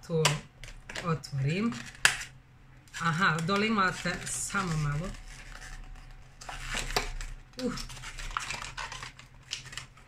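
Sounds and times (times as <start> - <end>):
packaging clicks taps and rustles: 0.2 - 10.0.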